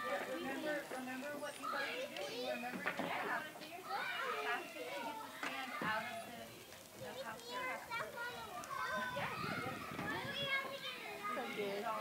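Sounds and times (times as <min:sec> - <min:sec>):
children chattering and calling out: 0:00.0 - 0:12.0.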